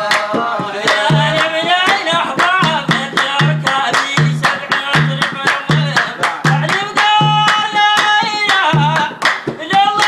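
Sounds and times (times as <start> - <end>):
hand clapping: 0.0 - 10.0.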